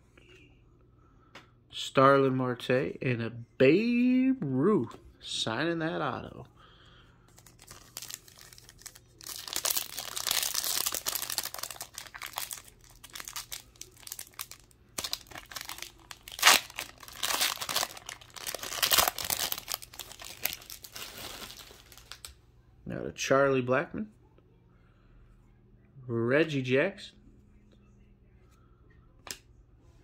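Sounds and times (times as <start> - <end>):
foil wrapper crinkling: 7.3 - 22.3
foil wrapper ripping: 7.4 - 22.3.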